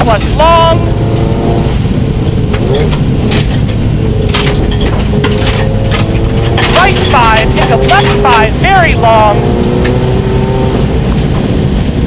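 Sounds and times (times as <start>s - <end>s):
rally car engine: 0.0s - 12.0s
tyre and road rumble: 0.0s - 12.0s
gravel striking underbody: 2.5s - 8.5s.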